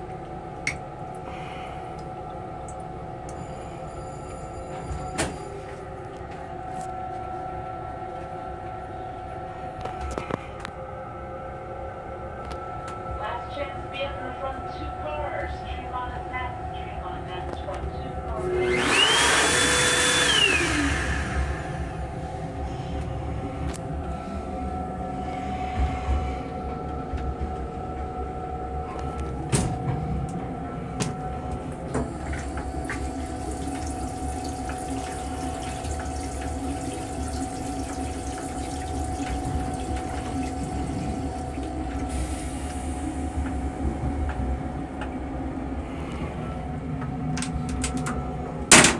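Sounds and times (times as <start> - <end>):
railcar rumble: 0.0 - 48.9
electric hand dryer blowing: 18.4 - 22.0
toilet flush hiss: 32.3 - 43.0.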